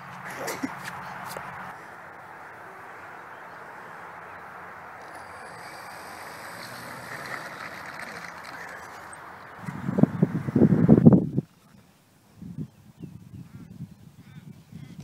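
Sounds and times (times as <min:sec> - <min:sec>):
outdoor background hiss: 0:00.0 - 0:15.0
wind buffeting microphone: 0:05.0 - 0:15.0.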